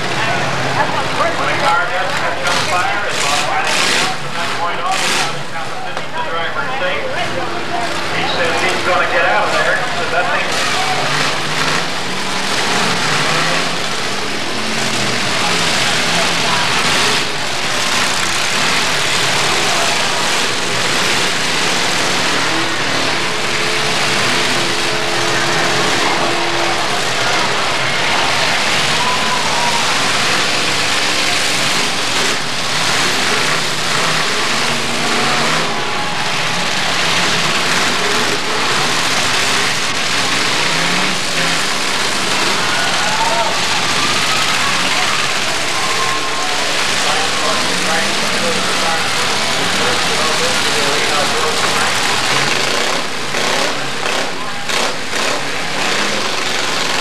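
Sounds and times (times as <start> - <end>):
car engines revving: 0.0 - 57.0
crowd noise and voices: 0.0 - 57.0.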